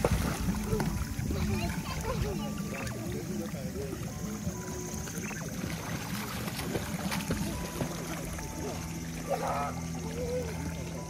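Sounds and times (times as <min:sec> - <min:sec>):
faint children's voices: 0:00.0 - 0:11.0
light background music: 0:00.0 - 0:11.0
water lapping in a pool: 0:00.0 - 0:11.0.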